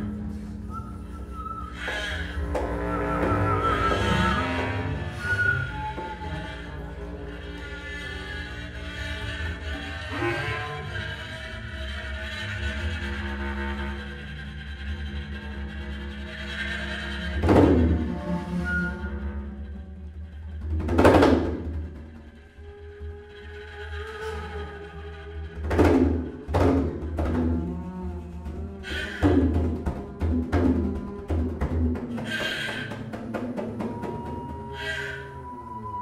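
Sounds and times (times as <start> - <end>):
flute tones: 0.0 - 12.2, 16.8 - 20.6, 22.5 - 36.0
double bass drone: 0.0 - 20.9, 21.6 - 32.3.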